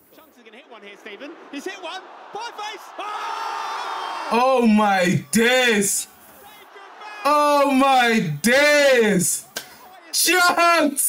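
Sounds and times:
stadium crowd noise: 0.0s - 11.0s
commentator talking: 4.3s - 6.1s, 7.2s - 11.0s.

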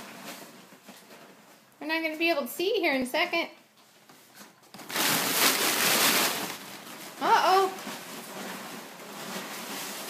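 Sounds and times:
packing paper rustling: 4.0s - 10.0s.

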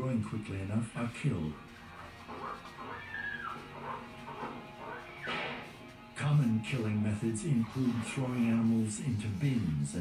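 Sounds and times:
low background music: 0.0s - 10.0s
pigs squealing: 1.7s - 5.7s.

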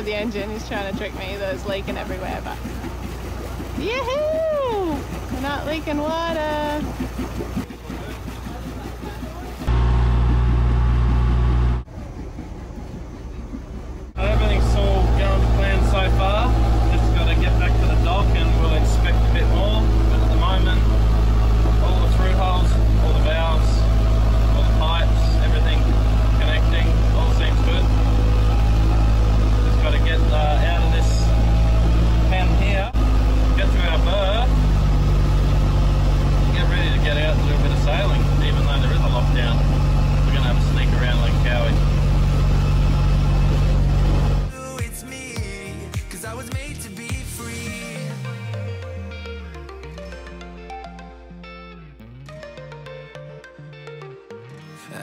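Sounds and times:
boat engine running: 0.0s - 54.0s
voices: 3.7s - 7.0s, 13.0s - 43.8s.

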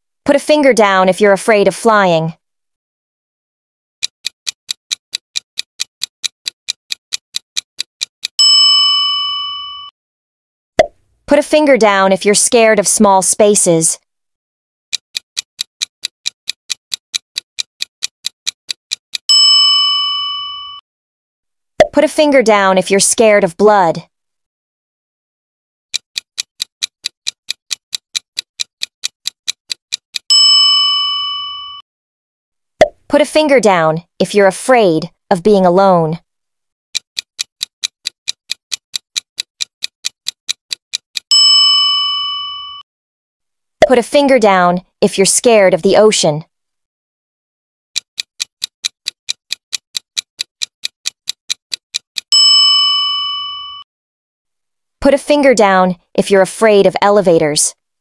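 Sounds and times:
clock ticking: 4.0s - 8.4s, 14.9s - 19.3s, 25.9s - 30.3s, 37.0s - 41.4s, 48.0s - 52.4s
bell ding: 8.4s - 9.9s, 19.3s - 20.8s, 30.3s - 31.8s, 41.3s - 42.8s, 52.4s - 53.8s.

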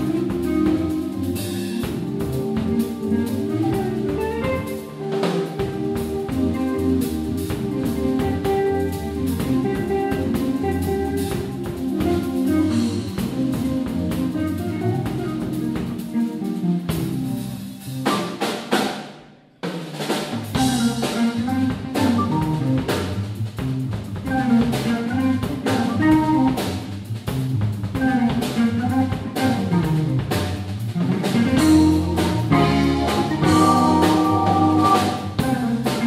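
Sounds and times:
electric guitar: 0.0s - 18.3s, 20.5s - 23.1s, 24.2s - 26.9s, 28.0s - 36.0s
organ: 0.0s - 18.5s, 20.5s - 23.2s, 31.2s - 36.0s
drum kit: 0.0s - 36.0s.

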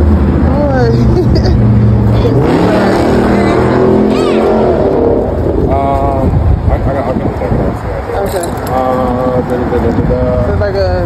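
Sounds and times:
loud low rumble: 0.0s - 8.1s
people's voices: 0.4s - 11.0s
high-pitched voice: 3.3s - 5.0s.

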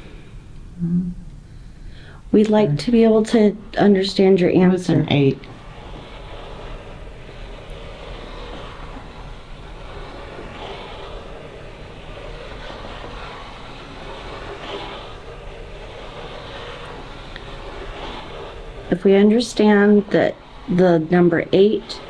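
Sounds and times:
background rumble and hiss: 0.0s - 22.0s.

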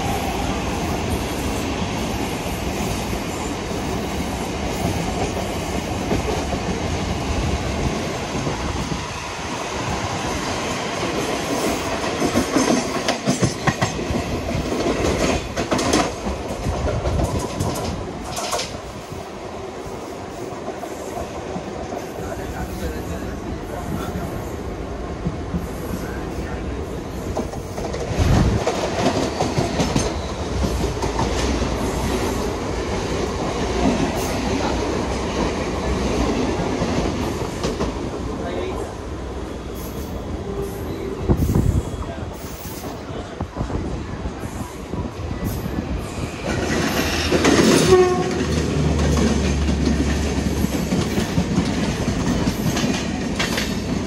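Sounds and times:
train wheels on rails: 0.0s - 54.0s
trains passing: 0.0s - 54.0s
wind: 0.0s - 54.0s.

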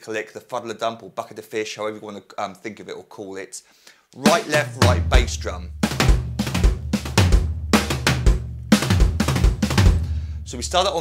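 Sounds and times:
electronic snare drum strokes: 4.2s - 11.0s
bass drum kick: 4.3s - 11.0s.

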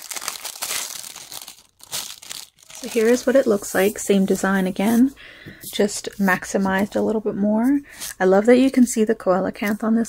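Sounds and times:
plastic packaging crinkling: 0.0s - 4.0s.

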